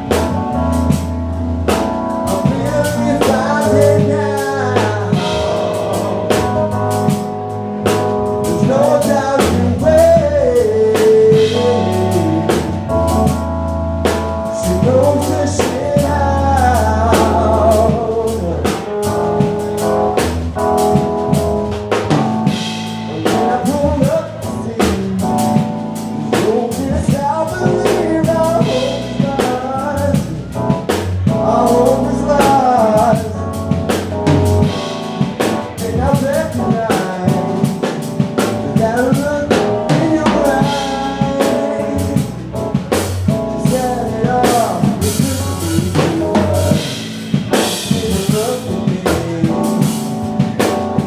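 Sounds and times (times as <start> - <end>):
drum kit beat: 0.0 - 51.0
guitar and keyboard: 0.0 - 51.0
person singing: 1.9 - 13.5, 14.4 - 19.8, 22.4 - 51.0.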